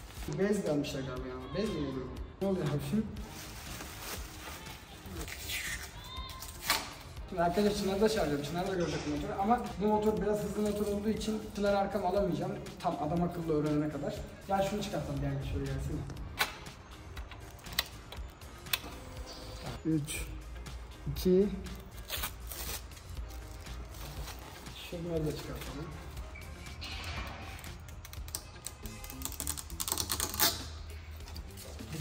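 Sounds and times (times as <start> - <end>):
plastic film crackling: 3.2 - 8.8, 21.7 - 25.8, 27.6 - 32.0.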